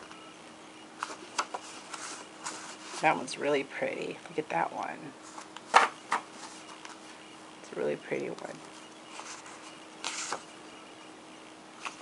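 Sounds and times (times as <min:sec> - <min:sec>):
paper rustling: 0:01.0 - 0:03.3, 0:05.2 - 0:07.1, 0:08.6 - 0:10.5, 0:11.8 - 0:12.0.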